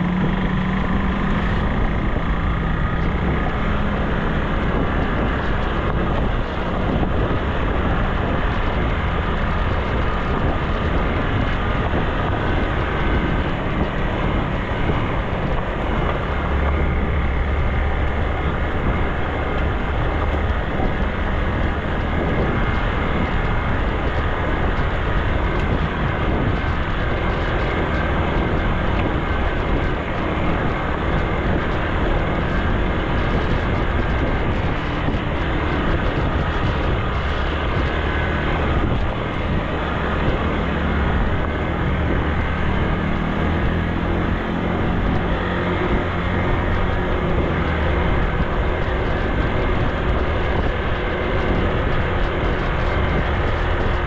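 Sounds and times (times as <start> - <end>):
motorcycle engine cruising: 0.0 - 54.0
wind rush: 0.0 - 54.0.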